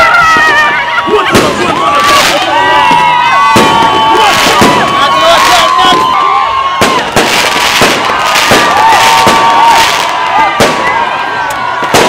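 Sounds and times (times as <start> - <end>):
crowd noise: 0.0 - 12.0
fireworks bangs: 0.0 - 12.0.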